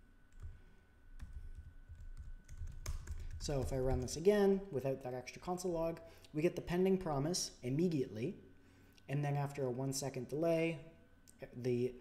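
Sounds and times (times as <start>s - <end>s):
computer keyboard keystrokes: 1.2s - 4.2s.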